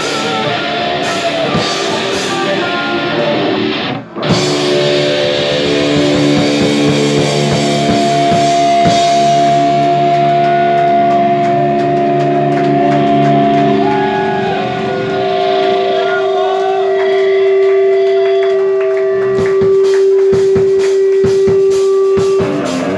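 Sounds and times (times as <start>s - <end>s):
held electric guitar note: 0.0s - 22.9s
drum and cymbal hits: 4.2s - 17.6s, 19.4s - 22.9s
voices shouting: 9.9s - 18.4s.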